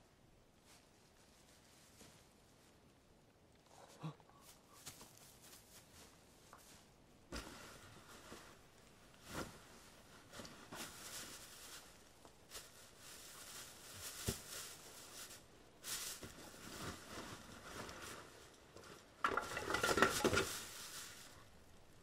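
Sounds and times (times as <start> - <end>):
rustling in dry leaves: 4.4 - 7.0, 7.6 - 22.0.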